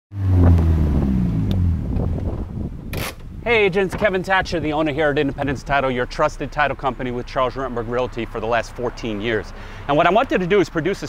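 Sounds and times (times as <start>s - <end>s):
car engine running: 0.1s - 8.4s.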